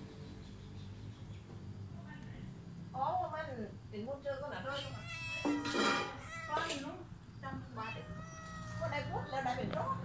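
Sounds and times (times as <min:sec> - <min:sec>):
cat meowing: 0:04.7 - 0:07.0, 0:07.7 - 0:09.7.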